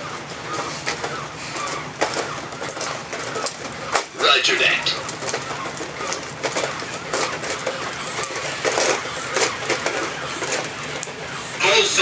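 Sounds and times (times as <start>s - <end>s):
plastic clicks and clacks: 0.0s - 4.2s, 5.0s - 11.2s
whirring gear motors: 0.0s - 12.0s.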